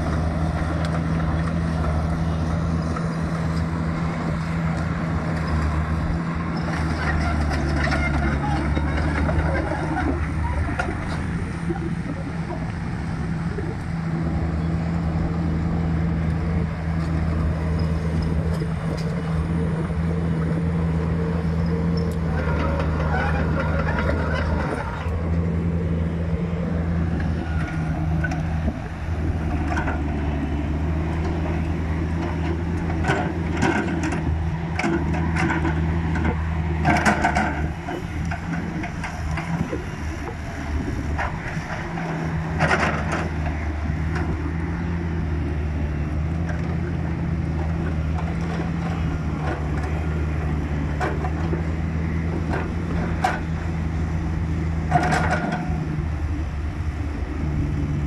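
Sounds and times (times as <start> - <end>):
excavator diesel engine running: 0.0 - 58.0
metal clanks and knocks: 54.9 - 55.8.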